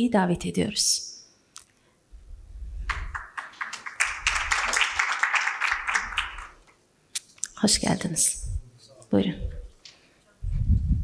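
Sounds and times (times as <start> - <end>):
audience applauding: 2.9 - 6.8.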